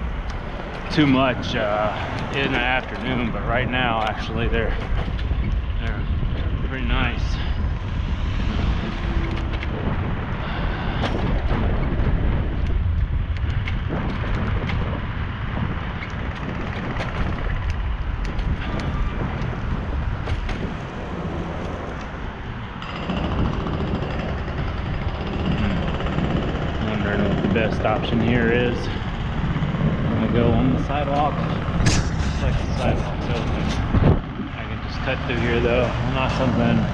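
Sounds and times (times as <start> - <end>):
road noise: 0.0 - 36.9
wind rushing over microphone: 0.0 - 36.9.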